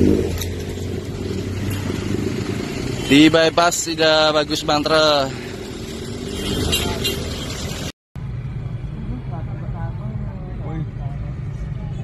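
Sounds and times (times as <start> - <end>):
rumble of passing vehicles: 0.0 - 12.0.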